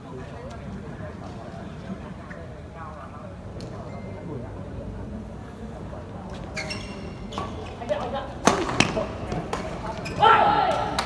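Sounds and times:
shoes squeaking on court floor: 6.2 - 10.3.

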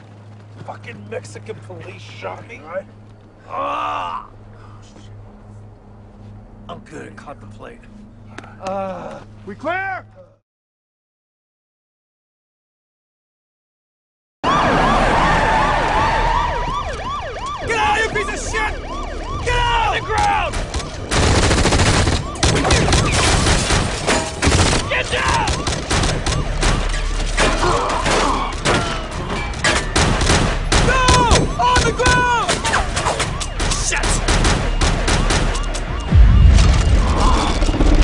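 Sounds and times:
police siren yelping: 14.4 - 24.0, 24.6 - 30.0, 30.7 - 38.0
rapid gunfire: 21.0 - 26.9, 29.7 - 37.0.

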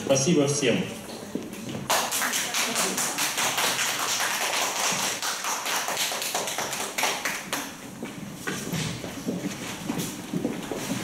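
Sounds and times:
audience applause: 1.9 - 7.8.

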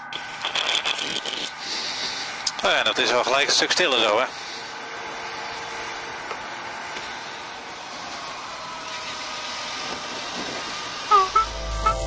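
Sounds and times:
rising musical tones: 11.1 - 12.0.

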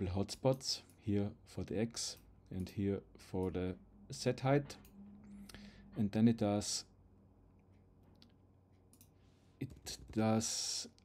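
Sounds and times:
computer mouse clicks: 8.2 - 10.2.

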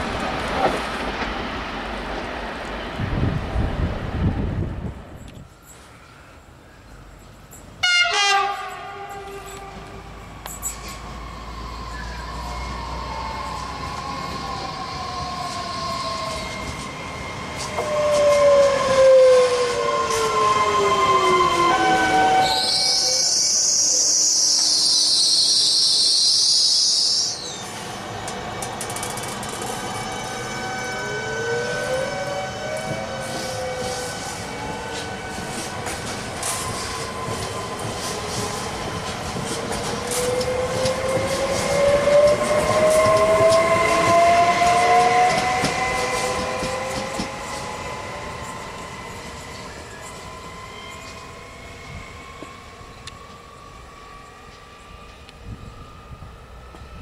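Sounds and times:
train traction motors whining: 8.5 - 57.0
loud shrill high sound: 18.8 - 27.7.

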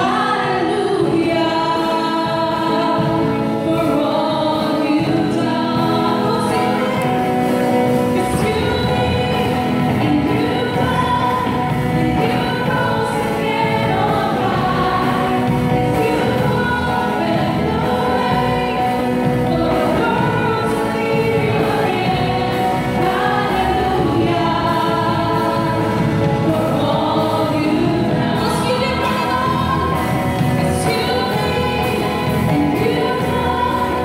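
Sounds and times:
musical accompaniment: 0.0 - 34.0
woman singing gospel song: 0.0 - 34.0.

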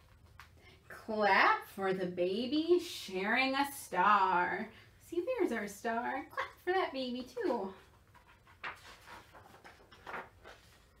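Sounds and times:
page turning rustle: 0.0 - 0.6, 7.7 - 11.0.

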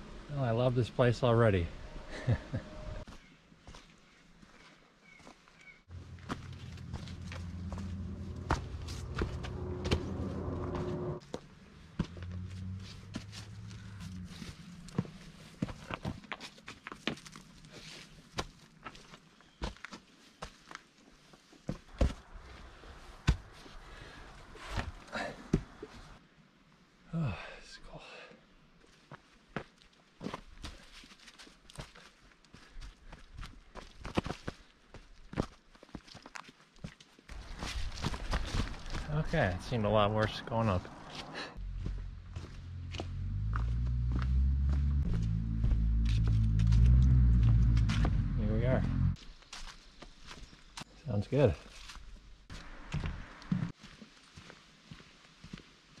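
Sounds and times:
footsteps on leafy dirt trail: 3.0 - 26.2, 28.8 - 56.0
low steady hum: 5.9 - 15.0.

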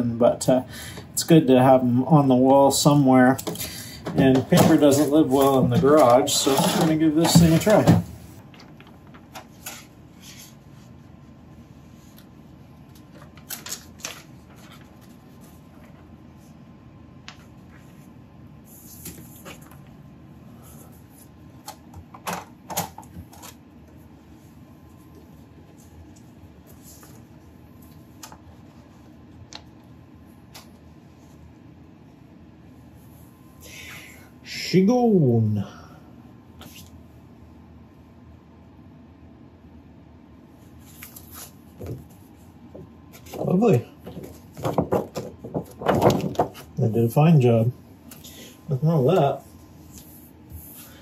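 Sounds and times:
laminated paper crackling: 3.7 - 10.6, 12.0 - 16.2, 43.1 - 50.1.

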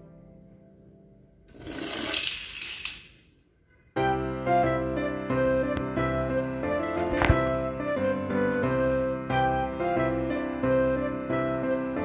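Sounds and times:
toy car rattling down a ramp: 1.5 - 3.3
background music: 3.6 - 12.0.

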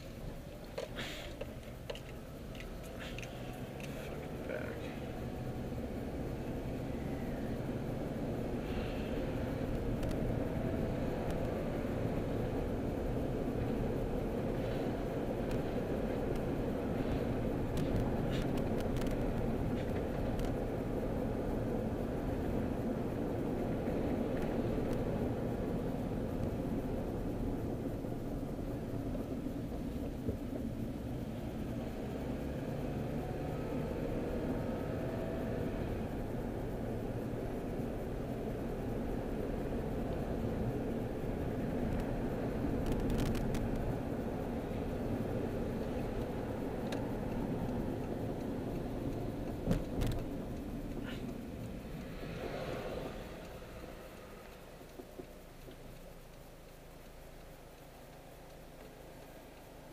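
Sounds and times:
car engine and road rumble: 0.0 - 59.9.

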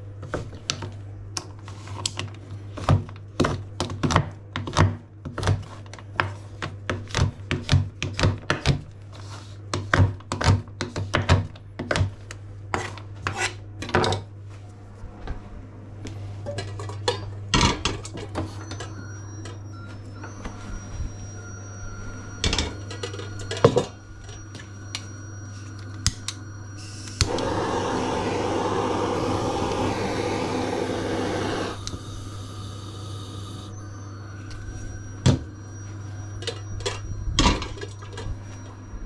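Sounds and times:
blowtorch flame hissing: 27.2 - 33.7.

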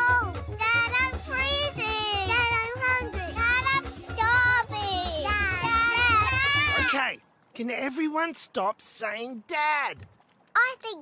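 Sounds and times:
high childlike singing voice: 0.0 - 6.9.

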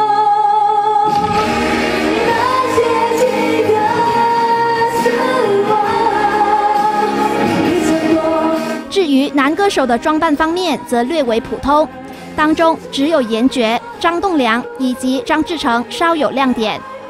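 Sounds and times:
woman singing pop song: 0.0 - 17.0
band backing: 1.1 - 9.4.

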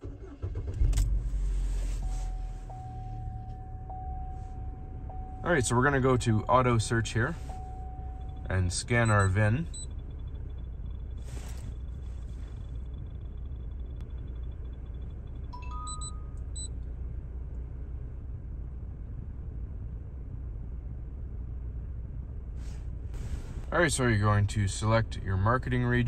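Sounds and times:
car engine idling: 0.0 - 26.0
short electronic beeps: 2.0 - 5.6, 7.4 - 10.7, 15.5 - 16.7.

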